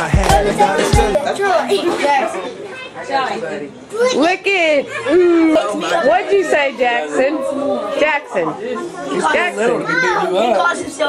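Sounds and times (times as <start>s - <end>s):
children talking and calling out: 0.4s - 11.0s.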